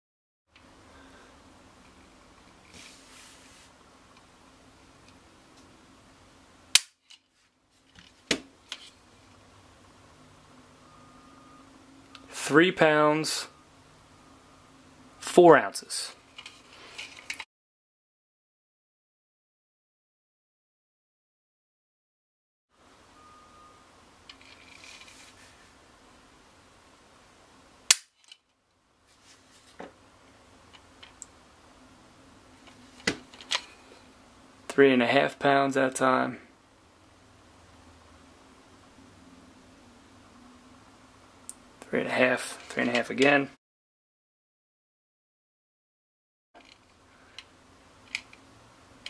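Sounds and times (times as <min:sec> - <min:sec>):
pistol dry-fire click: 0:06.8 - 0:07.0, 0:27.9 - 0:28.1.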